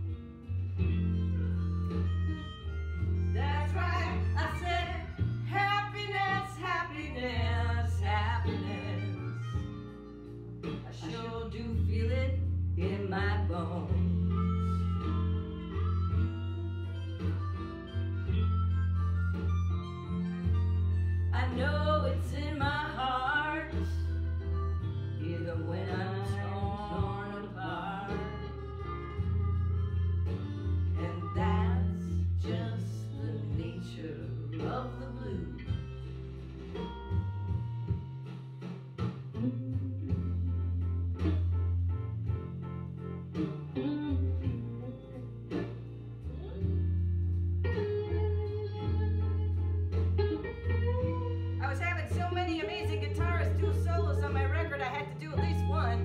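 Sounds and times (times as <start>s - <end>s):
guitar solo: 0.0s - 10.8s, 14.0s - 25.3s, 27.9s - 32.2s, 42.3s - 56.0s
blues song: 0.0s - 56.0s
steady bass line: 0.0s - 56.0s.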